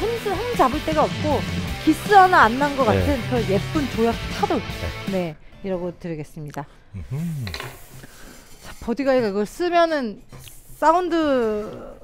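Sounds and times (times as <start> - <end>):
person humming: 2.9 - 3.2, 7.0 - 7.6.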